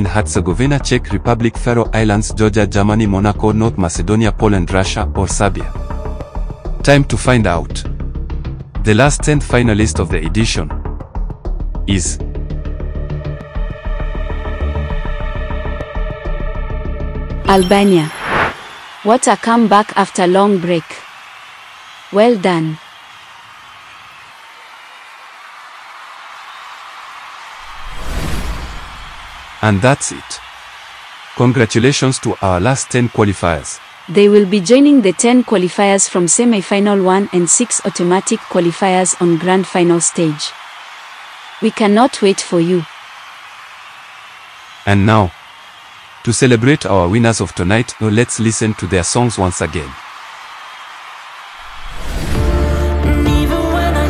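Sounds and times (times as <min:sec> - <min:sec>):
low music: 0:05.2 - 0:09.0.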